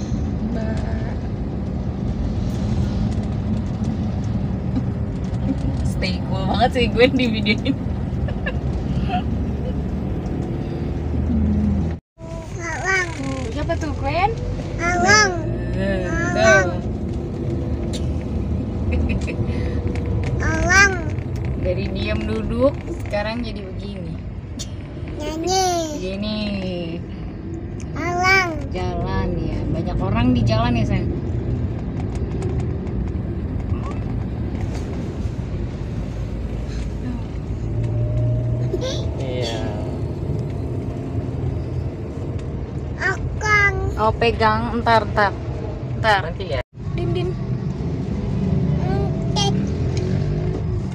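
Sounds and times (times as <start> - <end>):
car interior rumble: 0.0 - 50.9
voices: 12.4 - 17.0.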